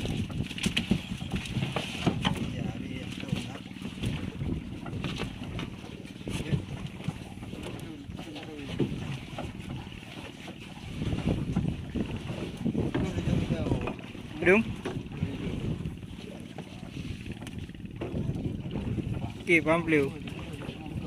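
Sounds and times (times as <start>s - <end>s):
wind on microphone: 0.0s - 21.0s.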